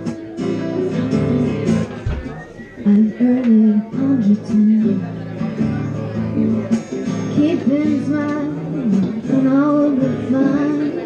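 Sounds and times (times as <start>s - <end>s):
strummed acoustic guitar: 0.0s - 11.0s
woman singing: 2.8s - 5.5s, 7.3s - 11.0s.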